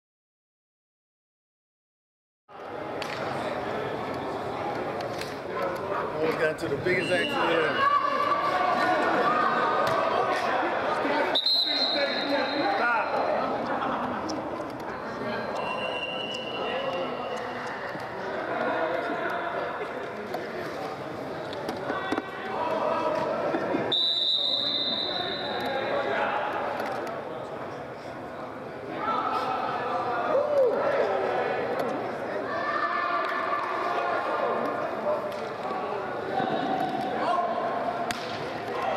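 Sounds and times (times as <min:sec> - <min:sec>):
echoing indistinct voices: 0:02.5 - 0:24.0, 0:24.6 - 0:38.9
referee's whistle: 0:06.9 - 0:07.8, 0:11.3 - 0:12.9, 0:15.5 - 0:17.4, 0:23.9 - 0:25.7.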